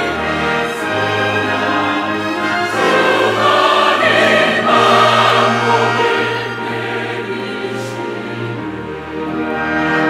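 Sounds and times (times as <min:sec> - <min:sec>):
church choir singing a hymn: 0:00.0 - 0:10.0.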